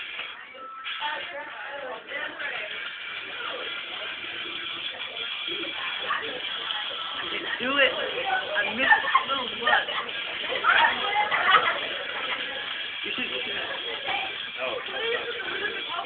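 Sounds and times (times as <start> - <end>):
people talking: 0.1 - 16.0
people laughing: 5.2 - 16.0.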